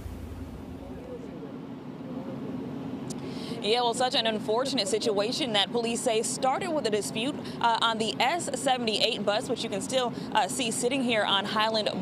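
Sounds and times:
idling vehicle engines: 0:00.0 - 0:12.0
faint distant voices: 0:00.7 - 0:02.9.

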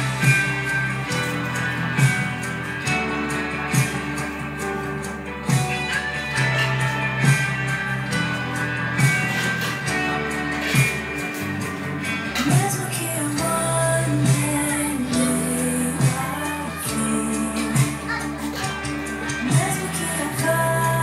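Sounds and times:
guitar-led dance music: 0:00.0 - 0:21.0.

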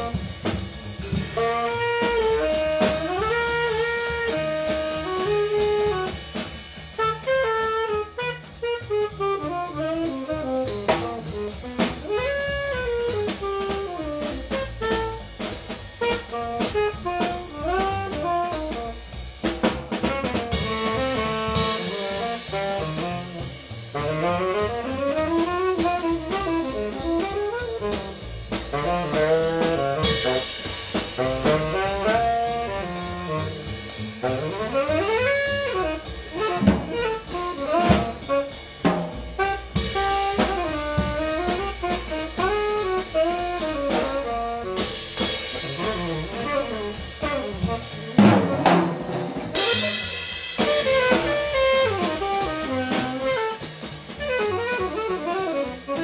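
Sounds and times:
double bass: 0:00.0 - 0:56.0
drum kit cymbals: 0:00.0 - 0:56.0
tenor saxophone fast runs: 0:01.2 - 0:06.2, 0:07.0 - 0:19.0, 0:20.1 - 0:48.4, 0:49.5 - 0:56.0.

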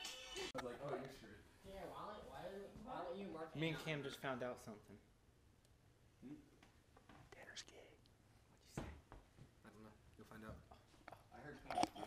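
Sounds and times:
faint whispered speech: 0:07.3 - 0:08.8.

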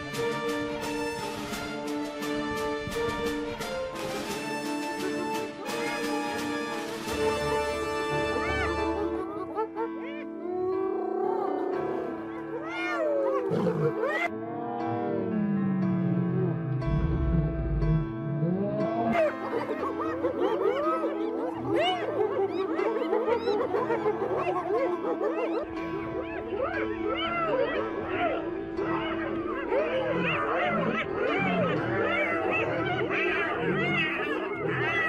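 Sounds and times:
hyenas crying: 0:07.2 - 0:14.3, 0:18.8 - 0:35.0
lion growling: 0:09.9 - 0:35.0.

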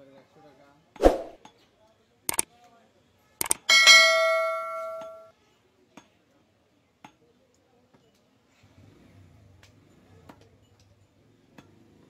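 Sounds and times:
double mouse click: 0:03.4 - 0:03.7
bell ding: 0:03.6 - 0:05.3.

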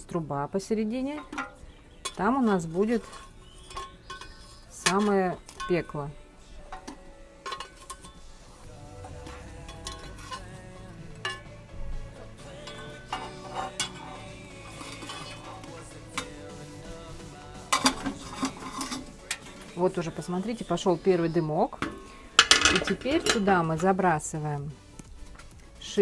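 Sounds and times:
coals dropping: 0:00.0 - 0:26.0
metal tongs clinking and scraping: 0:01.0 - 0:08.4, 0:09.0 - 0:11.7, 0:12.3 - 0:16.6, 0:17.6 - 0:24.1.

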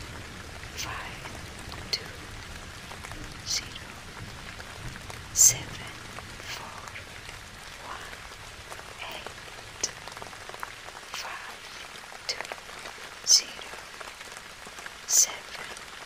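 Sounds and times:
steady rain: 0:00.0 - 0:16.0.

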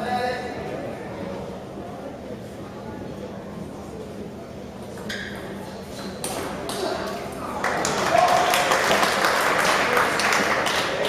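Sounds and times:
spectators clapping: 0:06.6 - 0:11.0.

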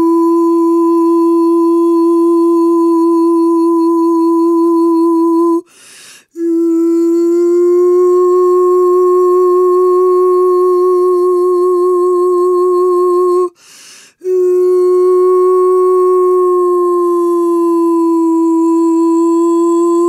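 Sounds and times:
woman singing a long tone: 0:00.0 - 0:20.0.

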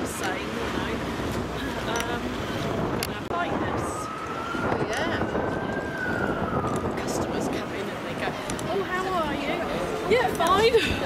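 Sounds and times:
people talking: 0:00.0 - 0:02.4, 0:03.0 - 0:06.0, 0:06.9 - 0:11.0
wind buffeting microphone: 0:00.0 - 0:11.0.

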